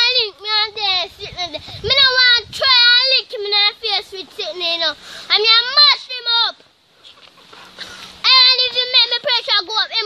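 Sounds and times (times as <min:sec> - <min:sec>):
girl speaking sing-song: 0:00.0 - 0:06.6, 0:08.2 - 0:10.0.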